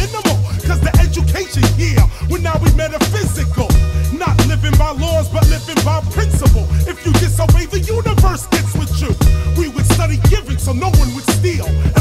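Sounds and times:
deep bass line: 0.0s - 12.0s
drum beat: 0.0s - 12.0s
rapping over a beat: 0.0s - 12.0s.

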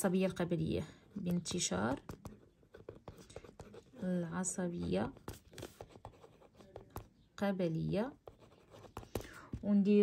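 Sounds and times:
pen scratching on paper: 1.2s - 7.2s, 8.1s - 9.3s.

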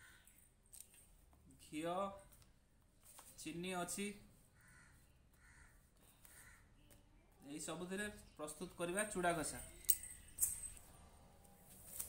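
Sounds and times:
crow cawing: 0.0s - 0.3s, 4.6s - 6.7s.

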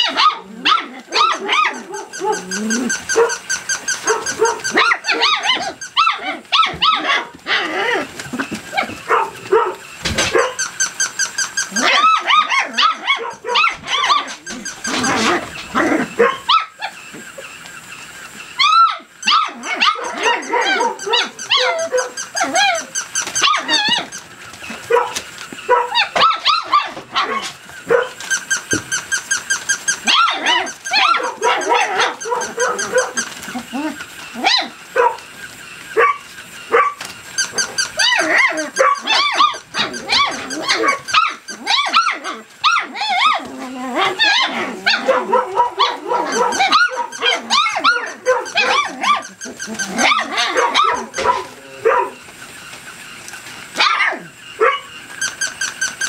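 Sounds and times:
puppies barking: 0.0s - 56.0s.

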